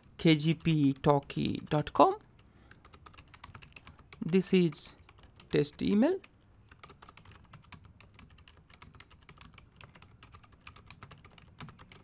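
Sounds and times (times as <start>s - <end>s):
typing on keyboard: 2.7s - 12.0s.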